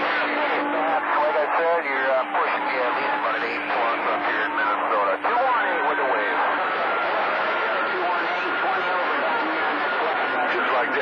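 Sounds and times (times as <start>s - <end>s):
garbled radio voices: 0.0s - 11.0s.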